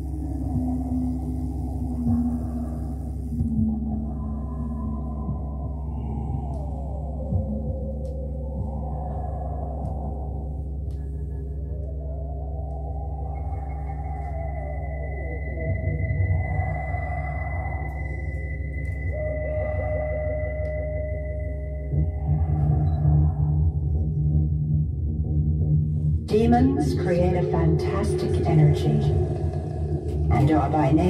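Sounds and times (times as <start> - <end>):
pulsing mid-pitched tone: 0.0 - 24.1, 26.3 - 31.0
low synthesizer drones: 0.0 - 31.0.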